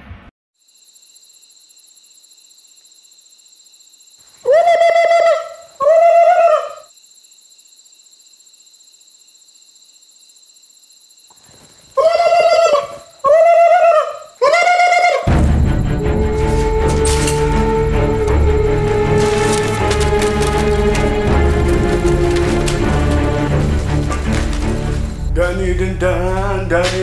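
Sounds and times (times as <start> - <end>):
loud pitched animal calls: 4.4 - 6.9, 12.0 - 15.3.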